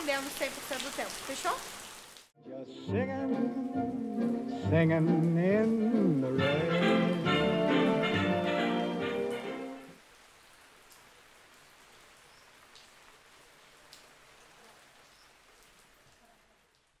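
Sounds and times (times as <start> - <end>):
faint rain on a window: 0.0 - 2.4, 6.8 - 17.0
music: 2.4 - 10.0.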